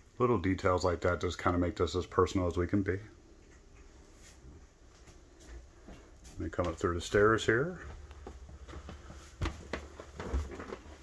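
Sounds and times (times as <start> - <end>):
footsteps on hard floor: 4.2 - 11.0.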